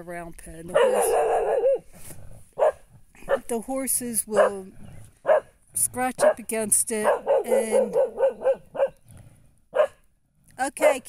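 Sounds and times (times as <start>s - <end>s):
puppy barking: 0.7s - 1.8s, 2.6s - 3.5s, 4.4s - 4.6s, 5.2s - 5.5s, 6.2s - 6.4s, 7.0s - 9.0s, 9.8s - 10.0s.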